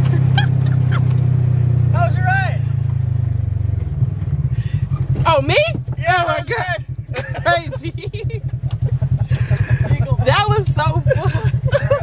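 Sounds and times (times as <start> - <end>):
off-road vehicle engine running: 0.0 - 12.0.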